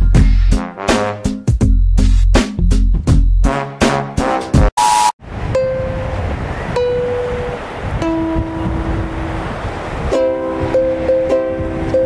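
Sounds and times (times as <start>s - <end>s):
backing music track: 0.0s - 12.0s
short beep: 4.8s - 5.2s
sea surf: 4.8s - 12.0s
ukulele notes plucked: 5.5s - 9.3s, 10.1s - 12.0s.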